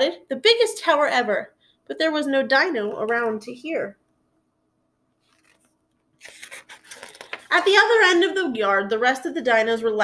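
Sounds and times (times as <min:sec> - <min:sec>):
paper pages rustling: 0:05.2 - 0:07.7.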